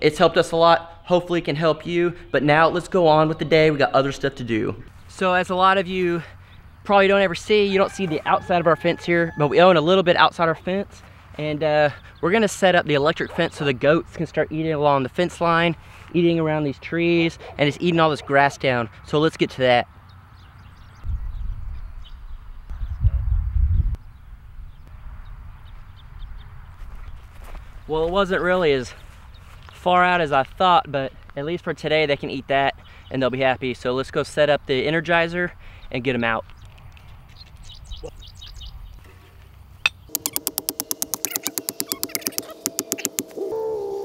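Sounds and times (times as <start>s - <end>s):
wind buffeting microphone: 21.0s - 24.0s
hammer tapping on metal stake: 39.9s - 43.4s
faint high chirps: 39.9s - 44.0s.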